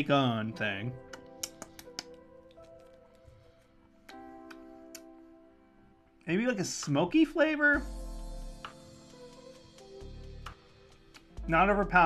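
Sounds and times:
background music of held chords: 0.0s - 12.0s
light sharp clicks: 1.0s - 3.1s.

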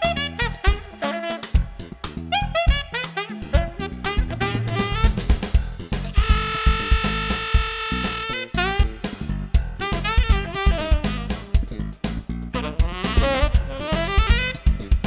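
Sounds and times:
drum kit: 0.0s - 15.0s
saxophone playing: 0.0s - 15.0s.

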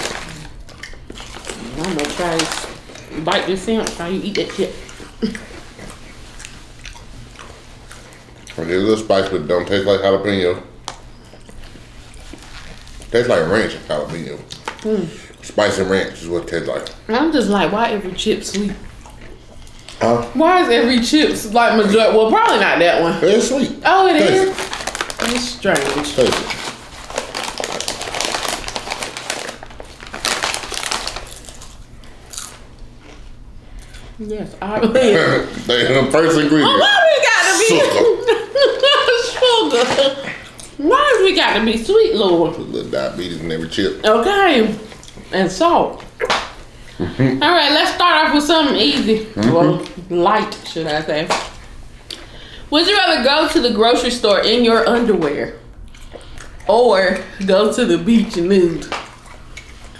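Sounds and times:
chewing and biting food: 0.0s - 3.3s, 4.4s - 8.7s, 18.5s - 20.2s, 24.6s - 34.2s, 58.9s - 59.9s
chip bag crinkling: 0.0s - 5.5s, 11.2s - 13.8s, 24.1s - 33.2s
crisp food crunches: 24.5s - 33.2s.

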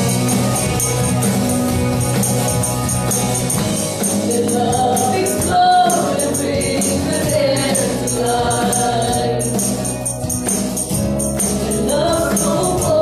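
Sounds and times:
band playing: 0.0s - 13.0s
high percussion beat: 0.0s - 13.0s
backing voices singing: 4.1s - 9.9s, 11.6s - 13.0s
woman singing lead: 4.2s - 9.8s, 11.5s - 13.0s.

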